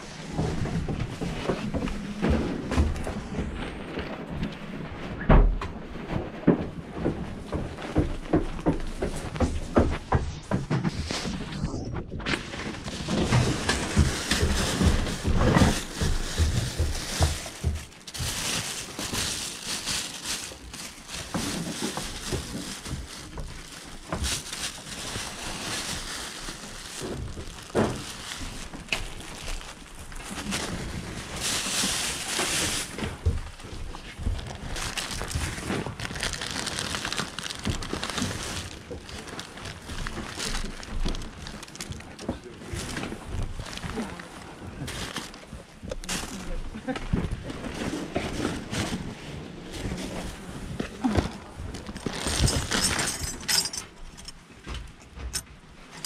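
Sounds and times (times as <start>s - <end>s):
knocks and thuds of items: 0.3s - 3.7s, 5.2s - 44.2s
plastic bags crinkling: 12.4s - 54.4s.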